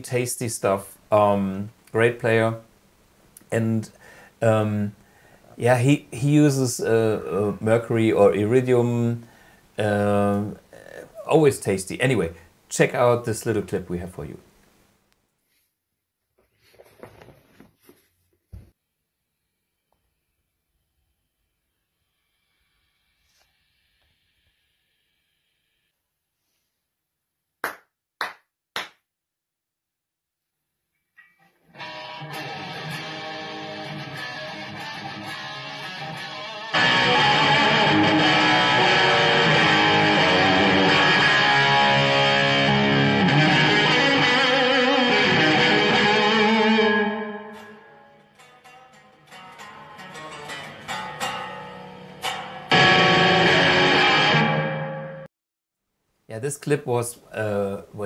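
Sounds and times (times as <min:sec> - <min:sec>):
distorted electric guitar lead: 0:31.8 - 0:55.3.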